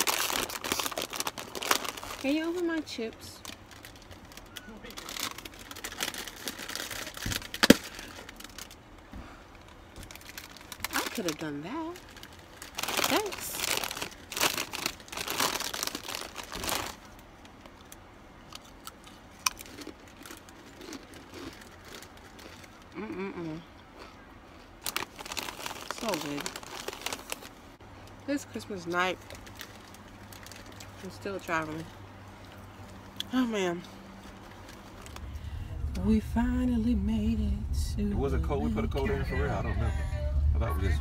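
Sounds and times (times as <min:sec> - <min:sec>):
chip bag crinkling: 0:00.0 - 0:08.8, 0:10.0 - 0:23.0, 0:24.0 - 0:27.6, 0:29.2 - 0:31.8, 0:34.1 - 0:35.6
chips crunching: 0:00.0 - 0:08.8, 0:10.1 - 0:17.2, 0:17.8 - 0:23.2, 0:24.0 - 0:27.6
bag snapping open: 0:04.5 - 0:08.7.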